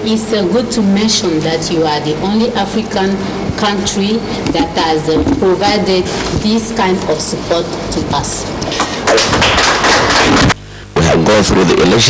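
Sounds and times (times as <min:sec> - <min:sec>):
small group clapping: 0:08.6 - 0:10.6.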